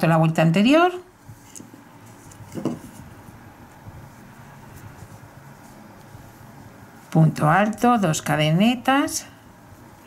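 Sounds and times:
yarn and crochet hook rustling: 1.1s - 8.7s.

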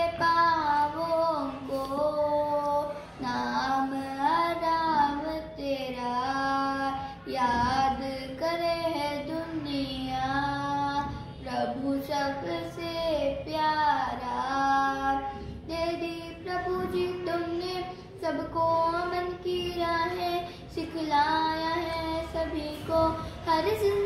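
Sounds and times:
girl singing devotional song: 0.0s - 24.0s.

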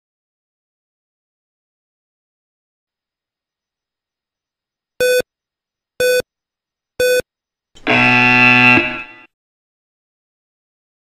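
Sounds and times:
short electronic beeps: 5.0s - 5.2s, 6.0s - 6.2s, 7.0s - 7.2s
low buzzer tone: 7.8s - 9.3s.

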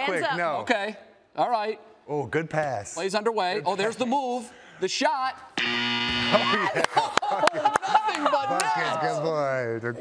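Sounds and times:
game clock buzzer: 5.6s - 6.7s
people shouting and whooping: 6.4s - 9.3s.

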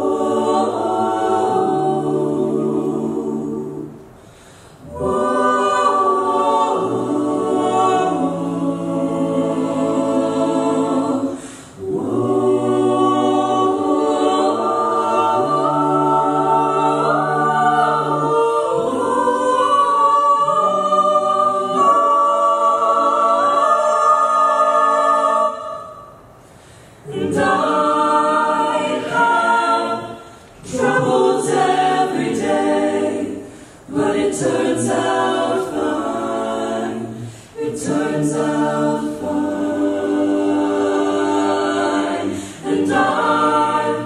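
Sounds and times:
a cappella group singing chords: 0.0s - 44.0s.

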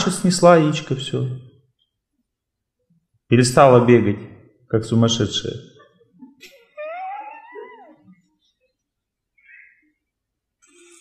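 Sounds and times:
man's falsetto vocal call: 6.8s - 8.1s.

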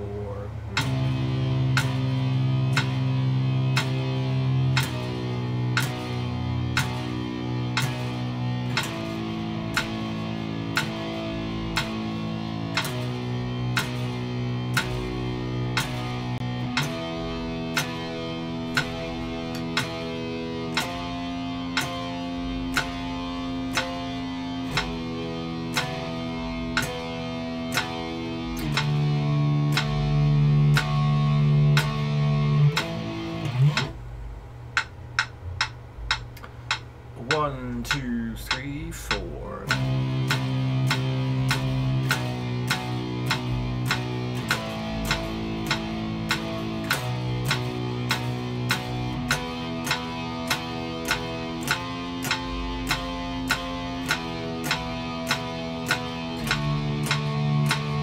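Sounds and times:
electric guitar power chords: 0.0s - 58.0s
metronome click: 0.7s - 34.0s, 34.7s - 58.0s.

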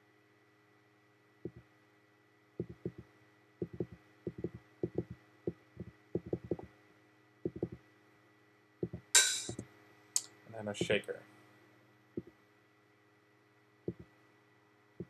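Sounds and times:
faint steady hum: 0.0s - 15.0s
computer mouse clicking: 2.6s - 3.0s, 3.6s - 5.2s, 5.8s - 6.7s, 7.5s - 7.8s, 13.9s - 14.1s.

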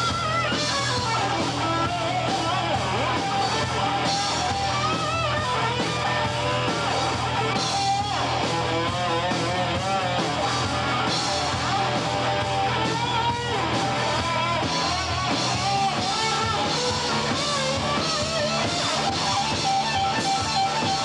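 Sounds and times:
bass guitar: 0.0s - 21.0s
distorted electric guitars: 0.0s - 21.0s
drum kit: 0.0s - 21.0s.

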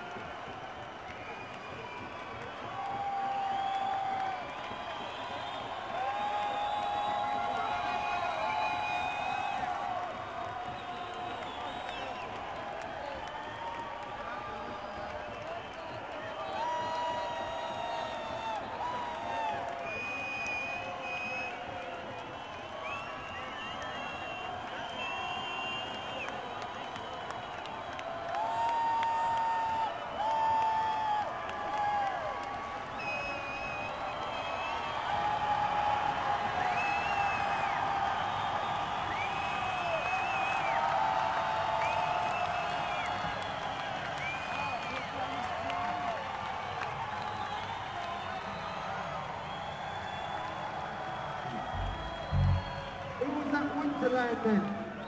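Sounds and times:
steady crowd noise: 0.0s - 55.0s
whoops and whistles: 0.1s - 12.4s, 14.4s - 53.8s
crowd cheering and shouting: 1.7s - 19.9s, 51.2s - 55.0s.

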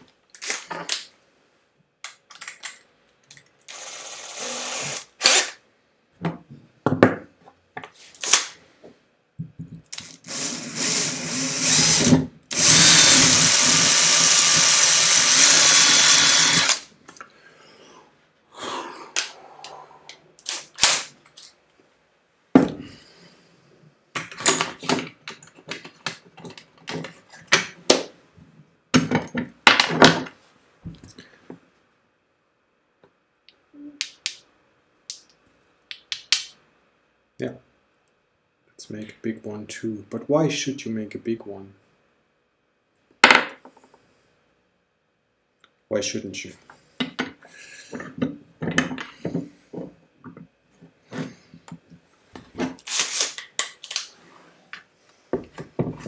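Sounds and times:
power drill drilling acrylic: 3.7s - 5.6s, 10.0s - 16.8s.

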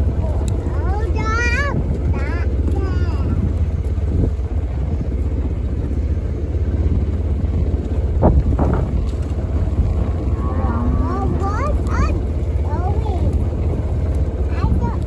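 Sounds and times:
vehicle engine rumble: 0.0s - 15.0s
dull knocks: 8.2s - 9.3s.

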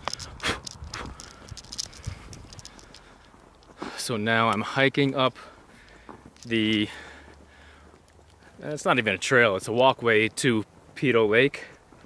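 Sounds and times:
camera handling clicks and rustle: 0.0s - 3.8s
footsteps on paved path: 0.0s - 12.0s.

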